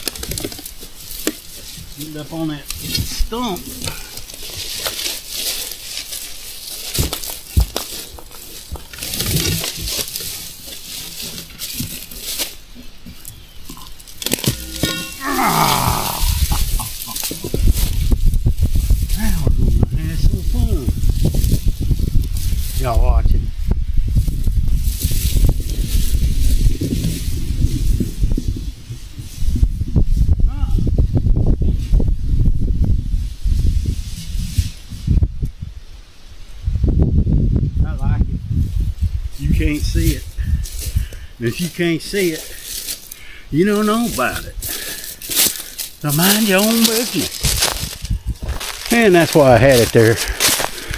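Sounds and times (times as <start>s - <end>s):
brush crackling and rustling: 0.0s - 23.2s, 38.6s - 50.9s.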